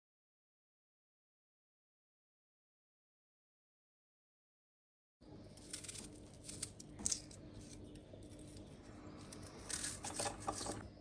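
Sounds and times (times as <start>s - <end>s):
faint steady hum: 5.2s - 11.0s.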